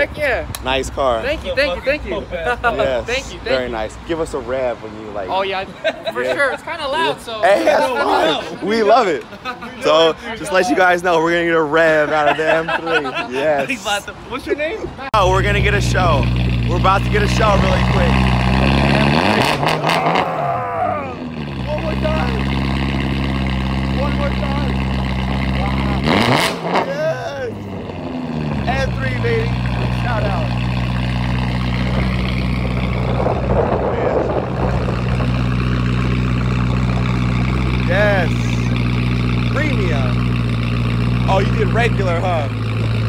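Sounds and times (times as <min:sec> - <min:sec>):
car engine idling and revving: 0:14.1 - 0:43.0.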